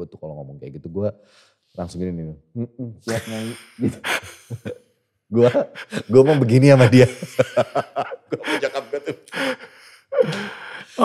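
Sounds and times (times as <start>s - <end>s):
man laughing: 3.1s - 4.8s, 5.4s - 11.0s
man's breathy gasp-like exhale: 9.3s - 11.0s.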